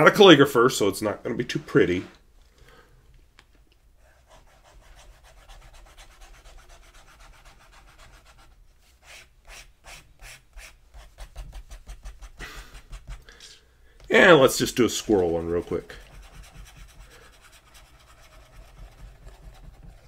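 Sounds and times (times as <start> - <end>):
pen nib scratching on paper: 4.2 - 13.3, 15.8 - 20.0.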